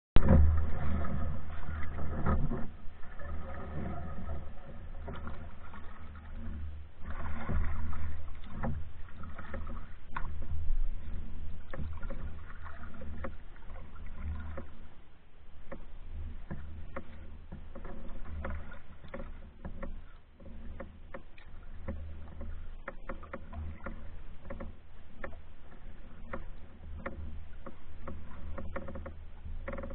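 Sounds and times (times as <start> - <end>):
steady low rumble: 0.2 - 12.9
canoe paddle strokes in water: 0.2 - 29.9.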